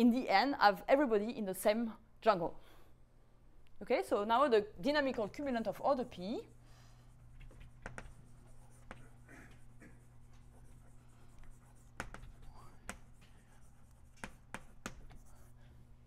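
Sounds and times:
steady low hum: 1.1s - 16.0s
chalk scratching on blackboard: 6.2s - 15.7s
chalk tapping board: 7.3s - 15.6s.

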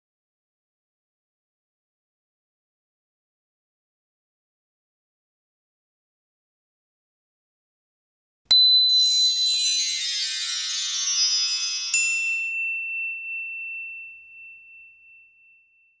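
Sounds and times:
shimmering cascade of chimes: 8.5s - 14.0s
sparkling ping: 8.5s - 16.0s.

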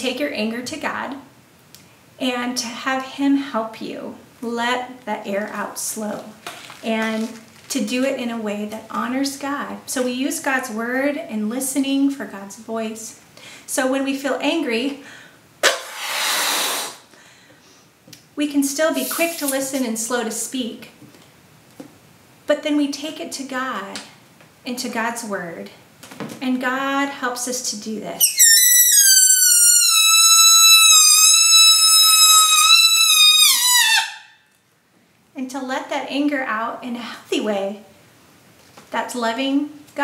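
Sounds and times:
sharp breath in: 15.0s - 17.9s
woman blowing up a balloon: 15.6s - 17.1s, 28.2s - 34.2s.

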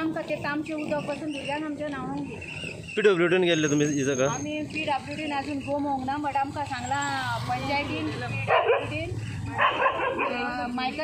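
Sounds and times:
people talking: 0.0s - 2.4s, 3.0s - 9.2s, 10.0s - 11.0s
dog barking: 8.4s - 10.8s.

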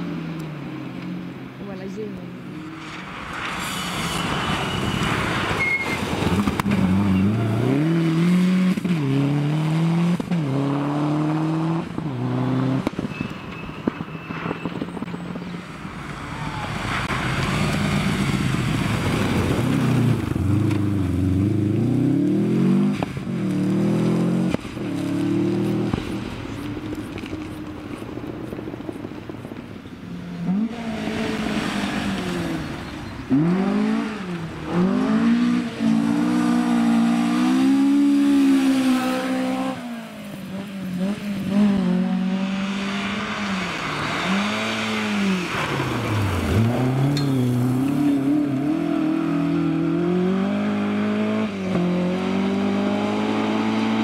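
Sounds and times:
rally car engines revving: 1.6s - 54.0s
car sliding on gravel: 2.8s - 8.4s, 43.0s - 48.7s.

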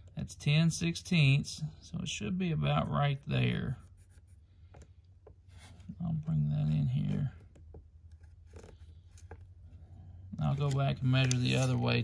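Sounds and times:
low steady hum: 0.0s - 12.0s
pencil scratching on wood: 2.8s - 4.8s.

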